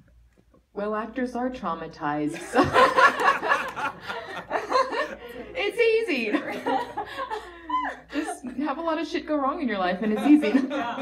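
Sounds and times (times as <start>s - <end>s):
women laughing: 2.3s - 8.7s, 10.0s - 11.0s.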